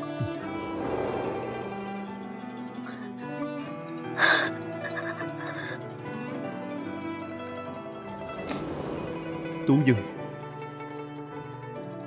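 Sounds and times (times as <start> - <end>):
soft plucked-string music: 0.0 - 12.0
woman gasping tearfully: 4.2 - 5.9.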